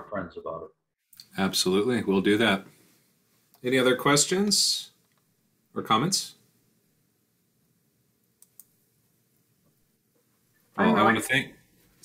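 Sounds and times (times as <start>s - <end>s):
short clicks: 8.4s - 8.8s.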